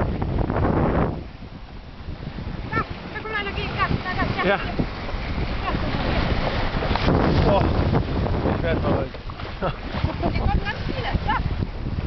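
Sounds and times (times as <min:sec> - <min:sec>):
seawater rushing along hull: 0:00.0 - 0:12.0
wind buffeting microphone: 0:00.0 - 0:12.0.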